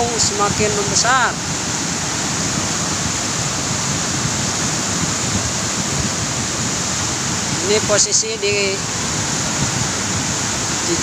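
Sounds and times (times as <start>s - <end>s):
flooded river rushing: 0.0s - 11.0s.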